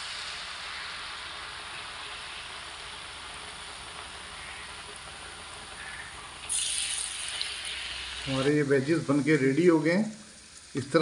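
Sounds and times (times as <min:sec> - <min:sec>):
potato wedges sizzling in oil: 0:00.0 - 0:11.0.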